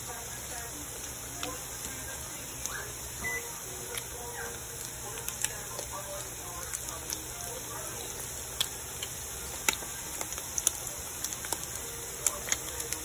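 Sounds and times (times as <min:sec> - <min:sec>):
meat sizzling in oil: 0:00.0 - 0:13.0
oil crackling pops: 0:08.5 - 0:13.0.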